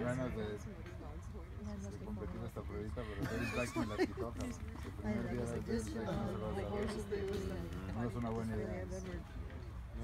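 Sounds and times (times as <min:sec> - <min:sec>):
background talk: 0:00.0 - 0:10.0.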